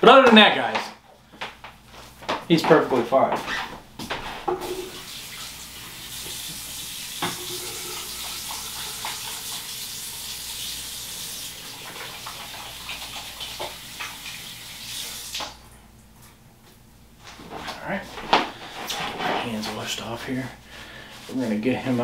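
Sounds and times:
tap water running into sink: 0:04.5 - 0:15.6.

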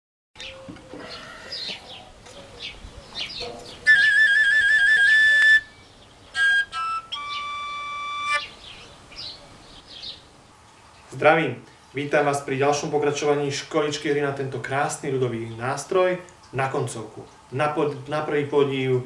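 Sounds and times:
overtone flute playing: 0:03.8 - 0:08.5.

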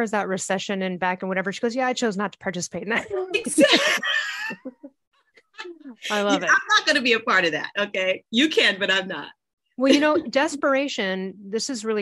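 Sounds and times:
woman laughing: 0:03.0 - 0:06.5, 0:09.8 - 0:10.6.

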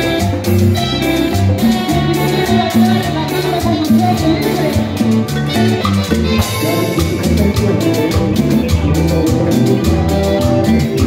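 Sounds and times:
latin dance band music: 0:00.0 - 0:11.0
electronic drum beat: 0:01.4 - 0:11.0.

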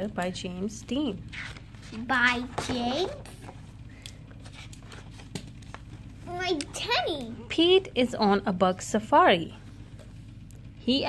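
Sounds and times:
low hum: 0:00.0 - 0:11.0
book pages rustling: 0:01.3 - 0:06.2.

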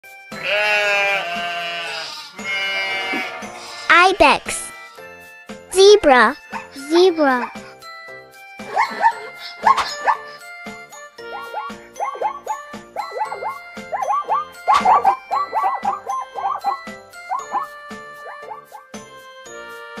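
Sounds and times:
background music: 0:00.1 - 0:20.0
goat bleating: 0:00.4 - 0:03.6
zebra yelping calls: 0:11.2 - 0:17.7.

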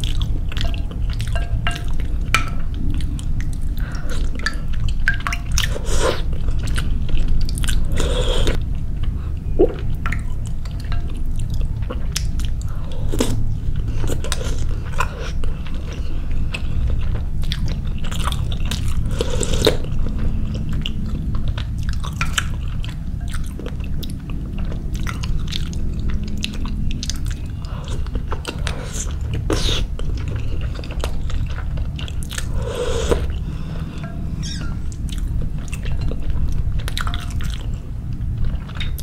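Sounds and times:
close chewing with wet mouth clicks: 0:00.0 - 0:33.4, 0:34.0 - 0:39.0
steady low hum: 0:00.0 - 0:39.0.

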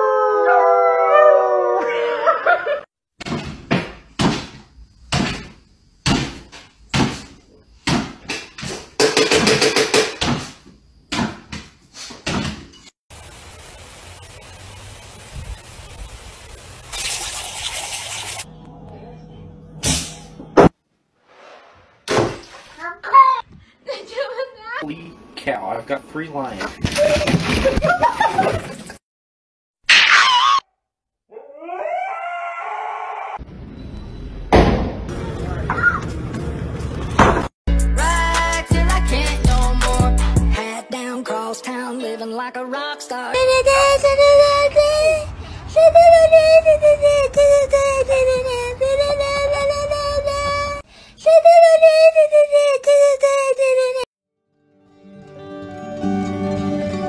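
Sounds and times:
dog howling: 0:00.0 - 0:02.6, 0:31.3 - 0:33.4
lawn sprinkler hissing: 0:13.1 - 0:18.5.

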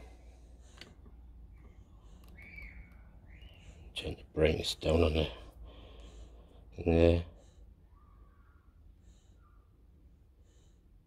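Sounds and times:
low room hum: 0:00.0 - 0:11.0
faint bird-like chirps: 0:01.5 - 0:04.1, 0:07.8 - 0:10.6.

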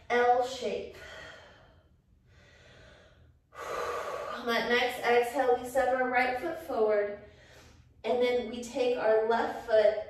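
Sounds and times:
woman breathing softly: 0:00.9 - 0:04.4, 0:07.2 - 0:08.0.

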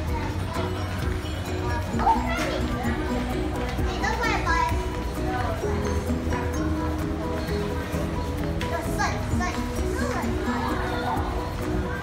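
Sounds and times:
background music of held notes: 0:00.0 - 0:12.0
children's voices: 0:00.0 - 0:12.0.

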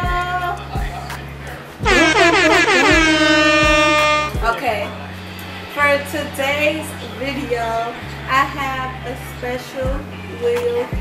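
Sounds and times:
air horn blaring: 0:01.8 - 0:04.4
intro music with low beat: 0:01.8 - 0:04.5.

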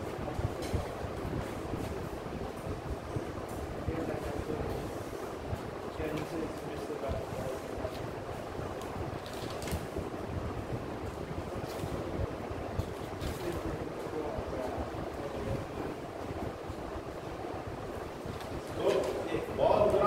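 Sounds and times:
steady rushing noise: 0:00.0 - 0:20.0
faint man's voice: 0:13.3 - 0:16.0.

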